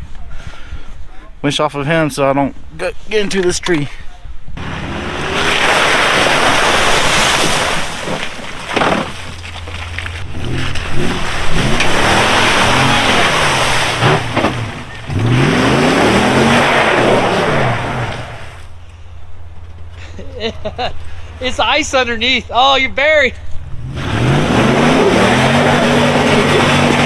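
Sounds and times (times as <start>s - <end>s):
engine revving: 4.6s - 7.0s, 10.2s - 18.7s, 23.7s - 27.0s
mud splashing: 4.6s - 18.6s
tires spinning: 4.6s - 18.8s, 23.4s - 27.0s.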